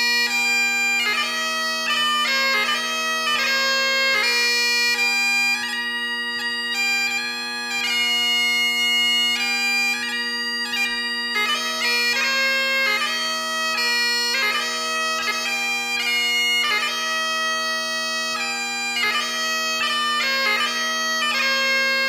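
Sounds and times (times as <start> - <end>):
bagpipe chanter melody: 0.0 - 22.0
bagpipe drones humming: 0.0 - 22.0.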